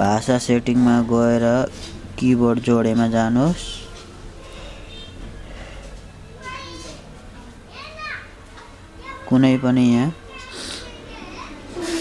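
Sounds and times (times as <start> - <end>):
faint children's voices: 2.7 - 12.0.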